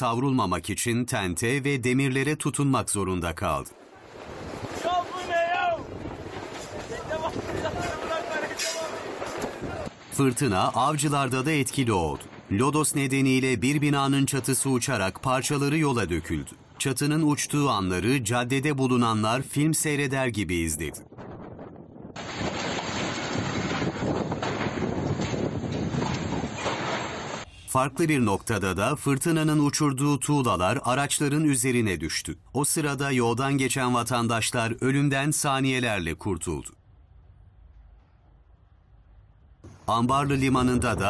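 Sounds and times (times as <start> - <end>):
strong wind on microphone: 4.0 - 8.3, 21.0 - 27.5, 39.7 - 41.0
awnings shaking in wind: 21.0 - 27.5.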